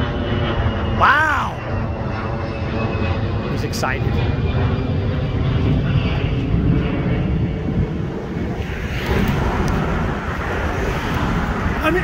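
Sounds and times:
highway traffic rumble: 0.0s - 12.0s.

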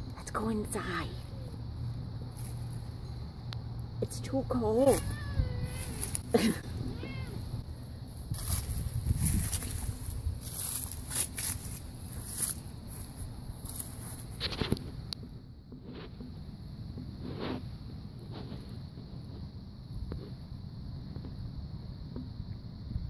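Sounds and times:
footsteps on dry leaves: 2.3s - 3.1s, 4.7s - 7.2s, 8.0s - 14.7s
wind on microphone: 8.2s - 10.7s.

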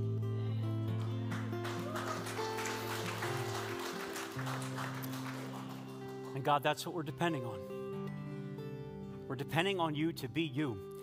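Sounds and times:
acoustic guitar: 0.0s - 11.0s
worship band held chords: 1.1s - 10.1s.

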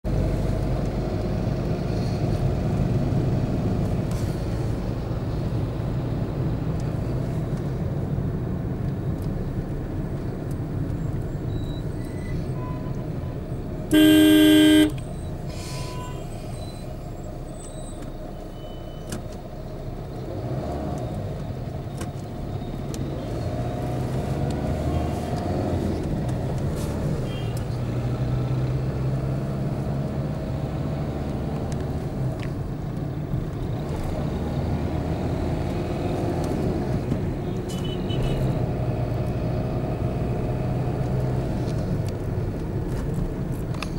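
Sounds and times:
engine and tyre rumble: 0.0s - 43.9s
faint short horn honks: 13.9s - 15.0s
loud vehicle horn honk: 13.9s - 15.0s.

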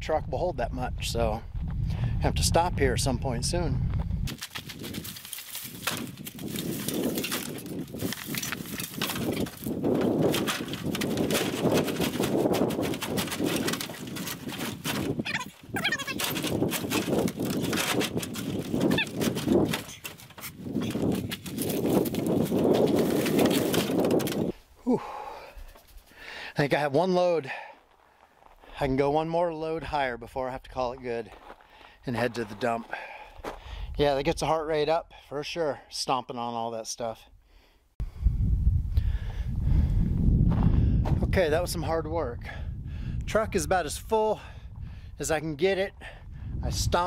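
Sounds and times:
branches crackling under boots: 4.3s - 24.8s.

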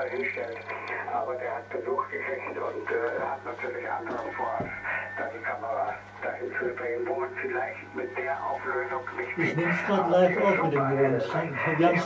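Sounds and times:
speech over radio loudspeaker: 0.0s - 12.0s.

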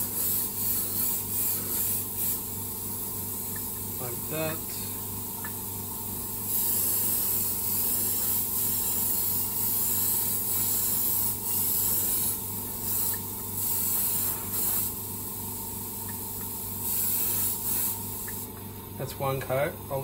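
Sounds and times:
airbrush air hiss: 0.0s - 5.1s, 6.4s - 18.5s
steady low hum: 0.0s - 20.0s.

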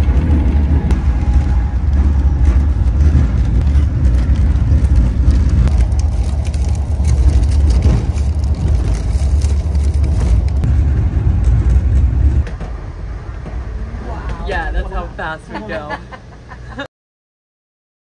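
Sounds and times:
train rumbling in motion: 0.0s - 16.9s.

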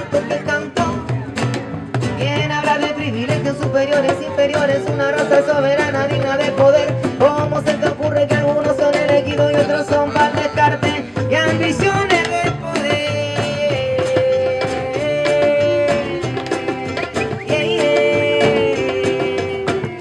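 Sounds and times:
acoustic guitars: 0.0s - 20.0s
drum beaten with a stick: 0.0s - 20.0s.

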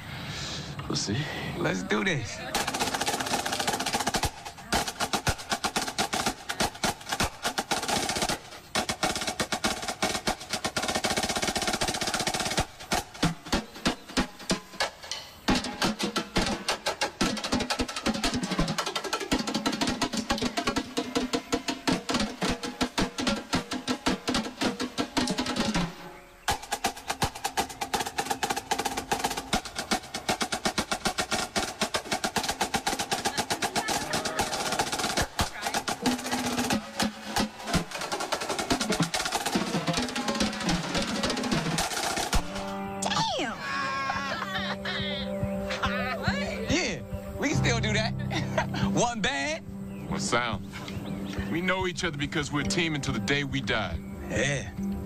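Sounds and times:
marching snare drums: 2.2s - 43.1s, 51.4s - 54.0s.

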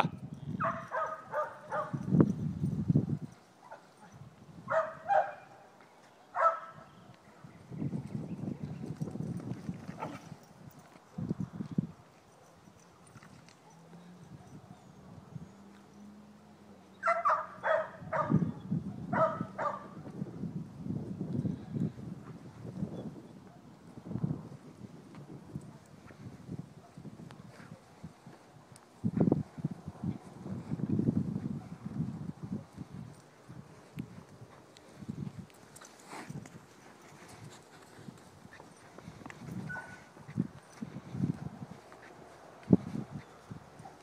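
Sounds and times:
dog barking in sharp yaps: 0.0s - 2.0s, 4.7s - 5.6s, 6.4s - 6.8s, 17.0s - 18.4s, 19.1s - 19.9s
cattle hooves on sandy ground: 0.6s - 6.6s, 7.7s - 14.7s, 23.6s - 44.0s
cattle hooves thudding on dirt: 33.1s - 44.0s.

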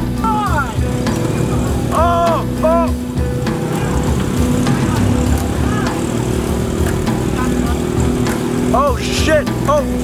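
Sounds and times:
small motorcycle engine running: 0.7s - 2.1s, 3.1s - 9.7s.

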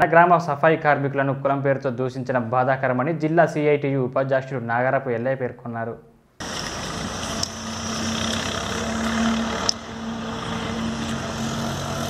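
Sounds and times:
engine humming: 6.4s - 12.0s
outdoor background noise: 6.4s - 12.0s.

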